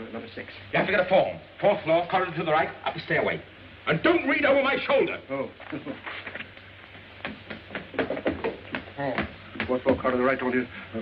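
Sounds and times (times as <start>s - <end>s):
knocks on wooden door: 7.2s - 10.2s.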